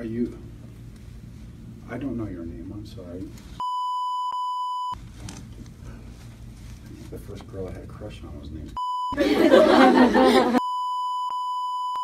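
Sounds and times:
censor bleep tone: 3.6s - 5.0s, 8.8s - 9.2s, 10.6s - 12.0s.

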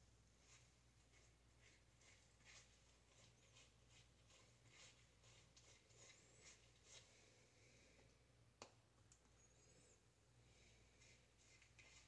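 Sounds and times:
brush strokes through wet hair: 0.0s - 8.1s, 10.5s - 12.0s.

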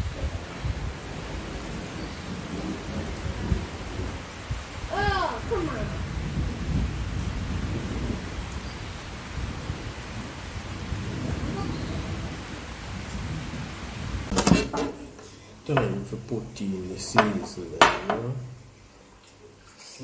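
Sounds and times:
rain falling: 0.0s - 20.0s.

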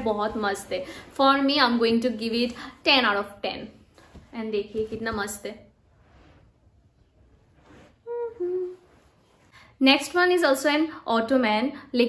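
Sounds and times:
woman humming: 8.0s - 9.0s.

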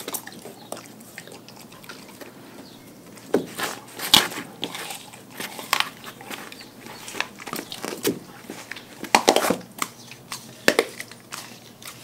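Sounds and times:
dog crunching raw fish: 0.0s - 12.0s.

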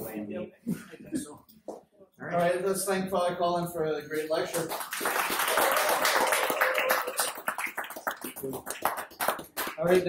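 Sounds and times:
audience applauding: 4.5s - 10.0s.

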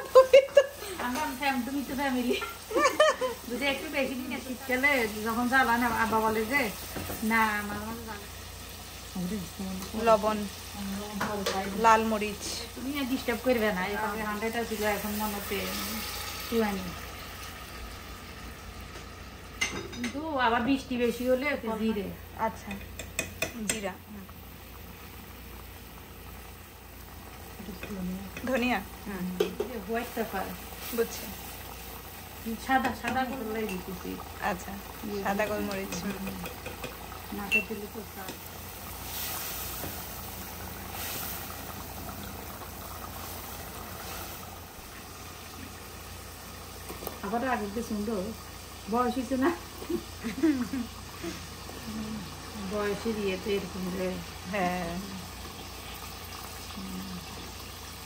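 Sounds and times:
broth simmering in a pot: 0.0s - 58.0s
spatula stirring: 22.6s - 23.9s, 35.4s - 37.6s.

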